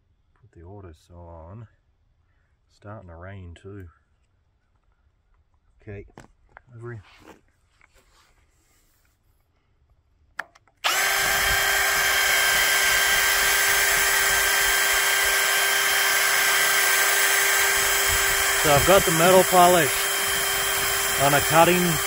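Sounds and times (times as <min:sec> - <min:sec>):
cordless drill buffing: 0:10.8 - 0:22.0.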